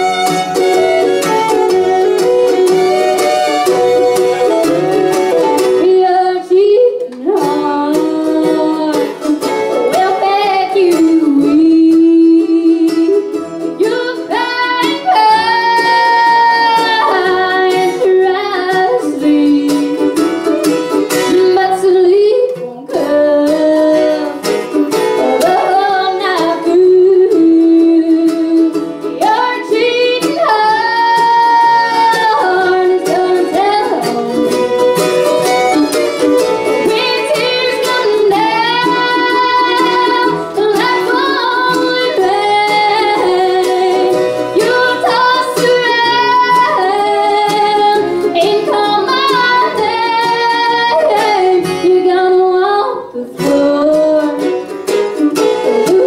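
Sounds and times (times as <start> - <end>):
upright bass: 0.0 - 5.9
acoustic guitar: 0.0 - 56.0
fiddle: 0.0 - 56.0
mandolin: 0.0 - 56.0
woman singing: 0.0 - 56.0.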